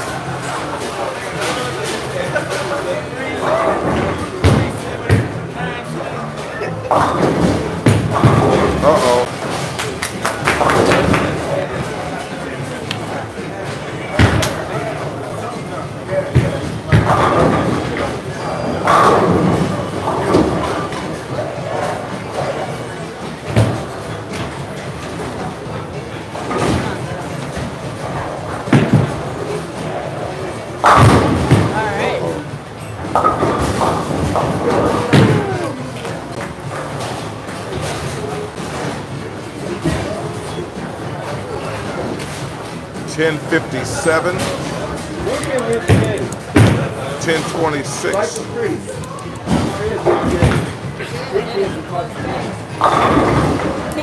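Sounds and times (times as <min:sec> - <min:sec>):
people talking: 0:00.0 - 0:36.5, 0:38.2 - 0:42.2, 0:43.0 - 0:54.0
bowling balls hitting lanes: 0:02.8 - 0:05.5, 0:06.9 - 0:43.0, 0:44.4 - 0:47.5, 0:49.3 - 0:51.0, 0:52.2 - 0:53.9
bowling pins crashing: 0:30.6 - 0:31.8.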